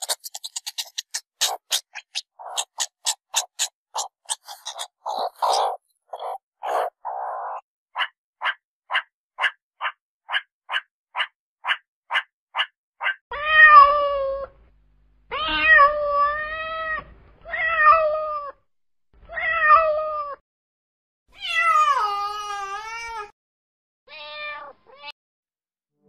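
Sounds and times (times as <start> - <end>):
cat meowing: 13.3 - 14.5, 15.3 - 18.6, 21.4 - 23.3, 24.1 - 25.2.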